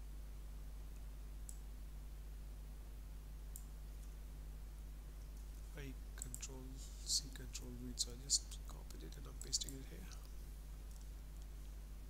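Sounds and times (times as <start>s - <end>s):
low electrical hum: 0.0s - 12.0s
man talking: 5.7s - 10.3s
computer mouse clicks: 6.2s - 6.5s, 9.4s - 10.3s.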